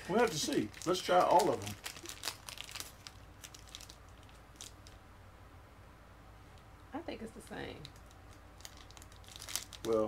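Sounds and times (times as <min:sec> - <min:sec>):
candy wrapper crinkling: 0:00.0 - 0:05.0, 0:07.8 - 0:10.0.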